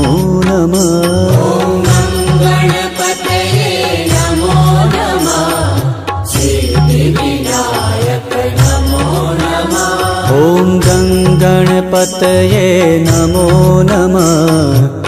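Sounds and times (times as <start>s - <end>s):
person singing devotional chant: 0.0s - 15.0s.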